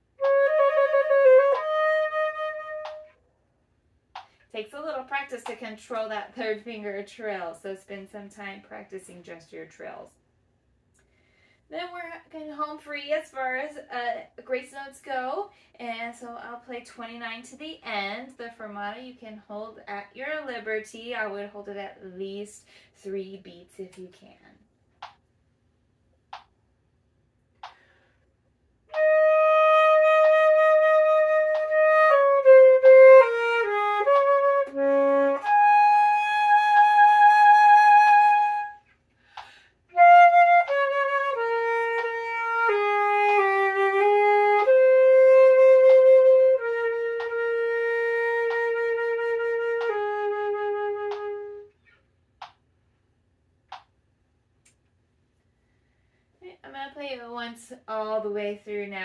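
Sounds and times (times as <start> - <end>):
solo flute playing: 0.0 - 3.2, 28.9 - 38.9, 39.9 - 51.7.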